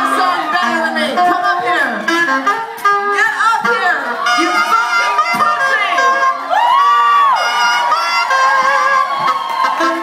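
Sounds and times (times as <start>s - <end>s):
crowd cheering: 0.0s - 1.2s, 3.4s - 10.0s
saxophone band playing live: 0.0s - 10.0s
high whooping cry: 3.3s - 10.0s.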